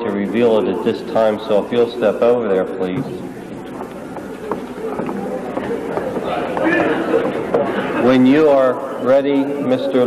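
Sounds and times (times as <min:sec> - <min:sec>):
faint room murmur: 0:00.0 - 0:10.0
low electrical buzz: 0:00.0 - 0:10.0.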